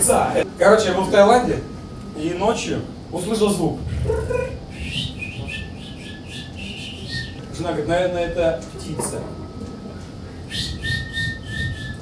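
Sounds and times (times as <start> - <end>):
man whistling high note: 4.7 - 7.4, 10.5 - 12.0.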